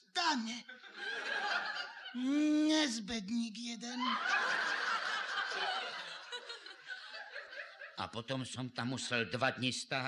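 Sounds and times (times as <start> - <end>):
audience laughing: 0.7 - 2.2, 4.0 - 8.0.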